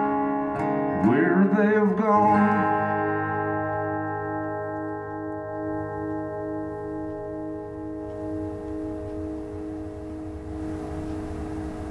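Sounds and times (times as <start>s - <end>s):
acoustic guitar chord ringing: 0.0s - 11.9s
steady low rumble: 5.0s - 11.9s.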